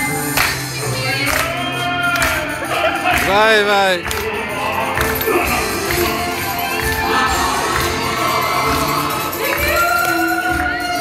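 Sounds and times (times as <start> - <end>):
several voices singing: 0.0 - 11.0
crowd shouting and cheering: 0.9 - 11.0.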